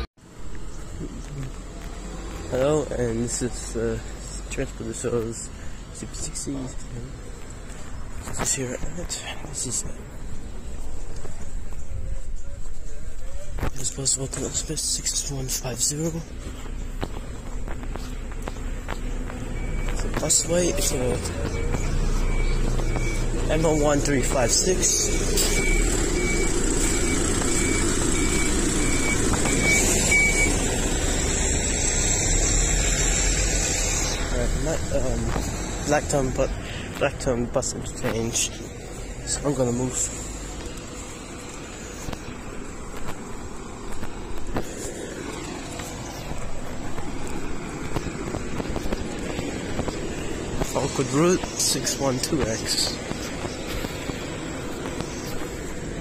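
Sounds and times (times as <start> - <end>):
diesel bus engine running: 0.0 - 56.0
short electronic beeps: 19.4 - 30.6.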